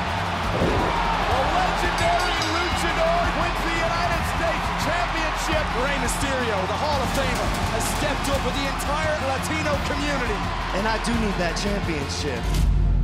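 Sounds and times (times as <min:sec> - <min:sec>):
arena crowd cheering and shouting: 0:00.0 - 0:12.6
music with low beat: 0:00.0 - 0:13.0.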